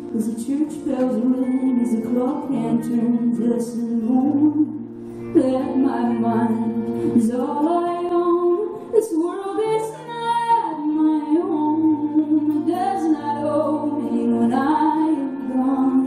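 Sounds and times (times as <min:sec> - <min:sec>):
acoustic guitar: 0:00.0 - 0:16.0
bass and keyboard notes: 0:00.0 - 0:16.0
woman singing slow melody: 0:00.0 - 0:16.0.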